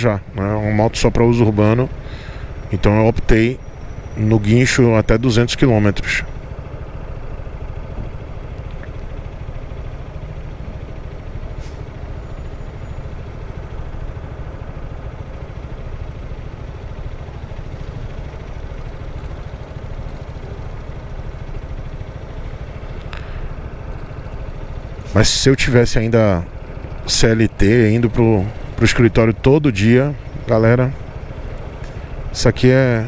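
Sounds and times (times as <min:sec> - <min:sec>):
scooter engine idling: 0:00.0 - 0:33.0.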